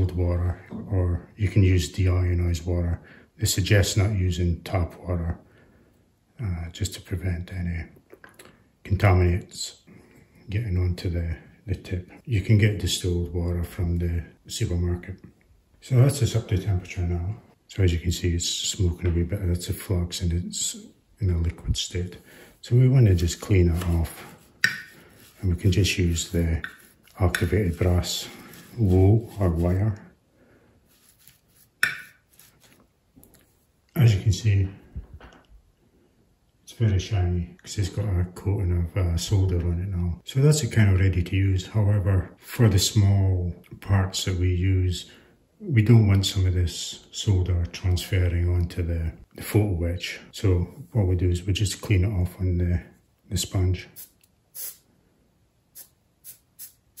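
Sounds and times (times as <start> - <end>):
soldering iron scratching brass wool: 23.2 - 29.8.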